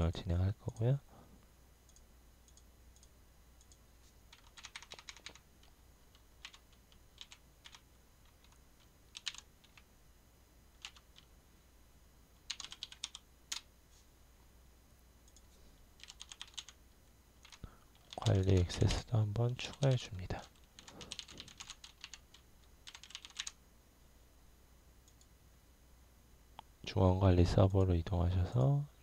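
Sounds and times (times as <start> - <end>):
computer keyboard typing: 1.9 - 9.8, 10.8 - 11.3, 12.4 - 13.7, 16.0 - 16.8, 17.4 - 18.7, 19.7 - 23.6.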